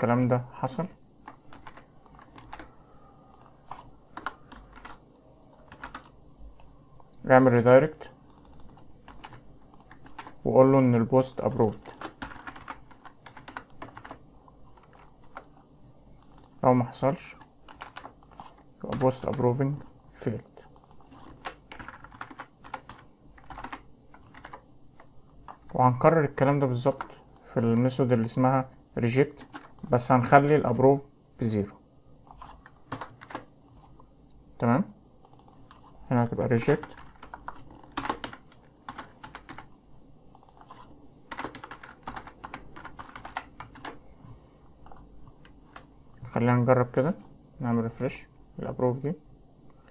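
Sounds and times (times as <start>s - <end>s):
keyboard keystrokes: 1.2s - 2.7s, 8.3s - 10.4s, 20.8s - 24.6s, 32.3s - 33.5s, 40.3s - 44.0s.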